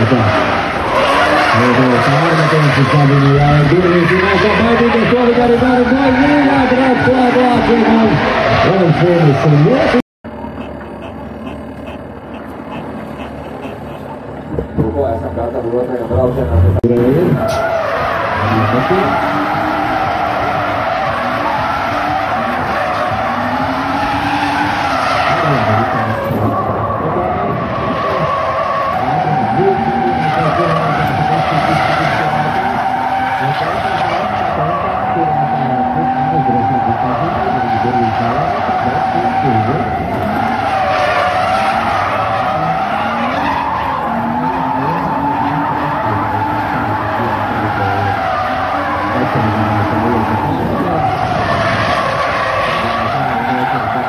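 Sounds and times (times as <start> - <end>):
car engines revving: 0.0 - 54.0
tyre squeal: 9.9 - 14.4, 17.3 - 26.8.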